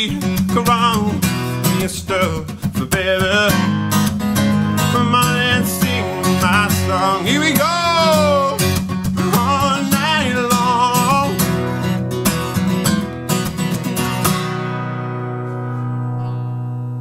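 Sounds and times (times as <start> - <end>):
man singing: 0.0 - 11.9
acoustic guitar strumming: 0.0 - 17.0.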